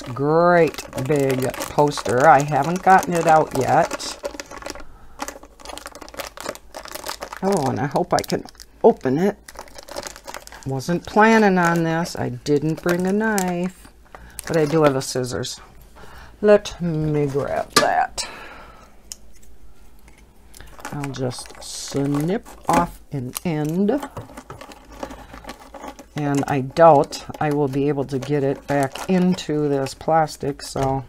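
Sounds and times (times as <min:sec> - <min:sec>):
plastic wrap crinkling: 0:00.0 - 0:18.2, 0:19.3 - 0:31.0
handling noises: 0:00.0 - 0:18.4, 0:19.0 - 0:31.0.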